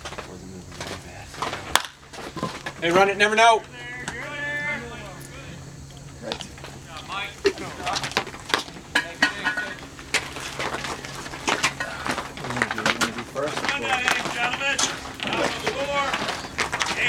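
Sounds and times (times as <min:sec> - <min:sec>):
indistinct chatter: 0:00.0 - 0:17.0.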